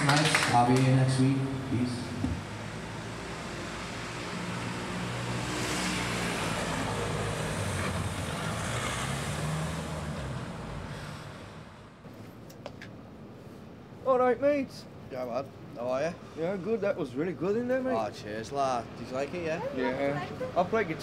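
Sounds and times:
motor vehicle passing: 0.0s - 12.0s.

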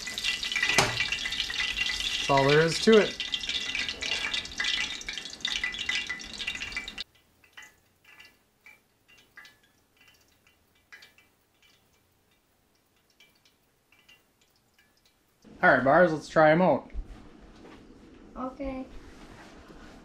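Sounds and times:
hot oil sizzling and crackling: 0.0s - 16.6s
faint small ticks: 7.0s - 15.5s.

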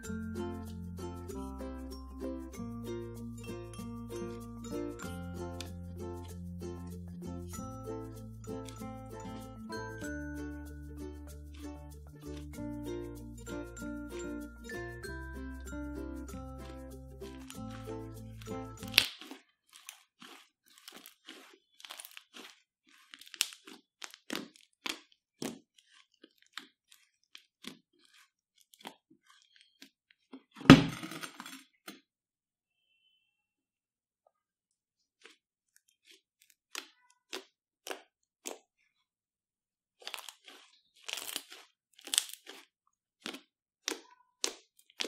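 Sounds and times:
slime crackling and squelching: 11.2s - 12.6s, 16.6s - 30.6s, 35.0s - 39.1s, 40.0s - 45.0s.

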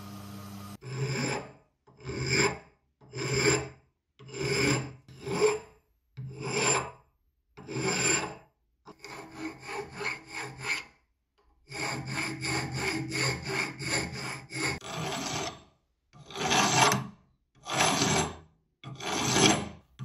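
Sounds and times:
hand file rasping on metal: 0.8s - 7.0s, 7.6s - 11.0s, 11.6s - 19.8s.

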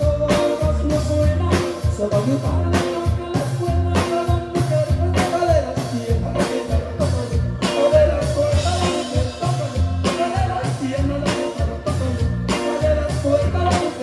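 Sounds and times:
drum kit steady beat: 0.0s - 14.0s
live band playing: 0.0s - 14.0s.

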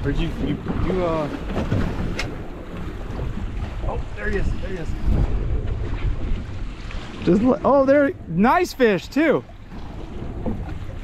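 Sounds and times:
water slapping boat hull: 0.0s - 11.0s
wind buffeting microphone: 0.0s - 11.0s.

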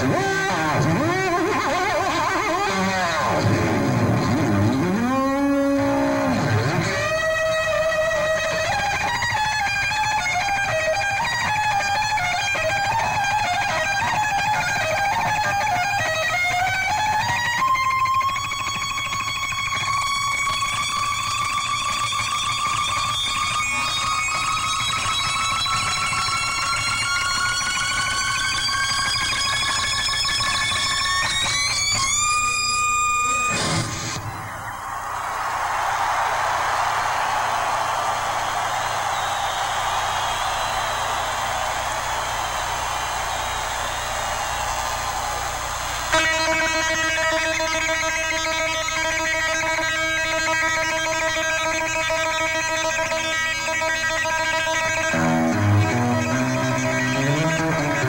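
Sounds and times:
distorted electric guitar: 0.0s - 34.8s, 41.1s - 58.0s.

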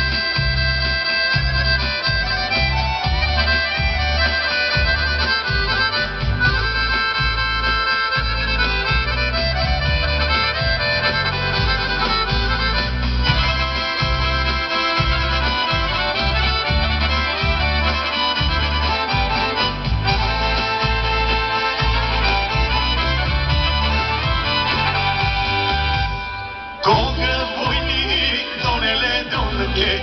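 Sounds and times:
folk dance melody: 0.0s - 30.0s
steady bass beat: 0.0s - 30.0s.

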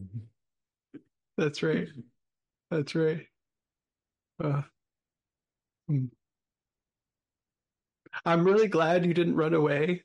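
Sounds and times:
short vocal sound: 0.0s - 0.3s.

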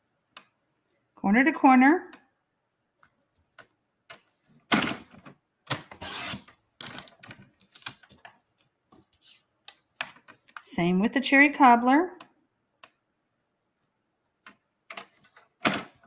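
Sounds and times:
paper trimmer blade scraping: 5.9s - 6.5s
paper handling: 6.8s - 10.6s.

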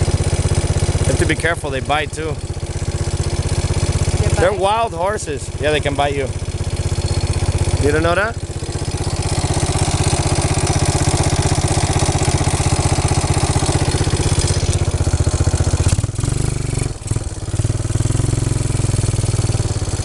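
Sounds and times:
atv engine idling: 0.0s - 20.0s.

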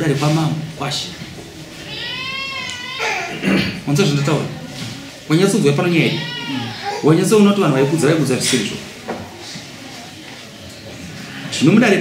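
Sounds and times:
high-pitched animal cry: 1.8s - 3.4s, 6.1s - 7.1s.

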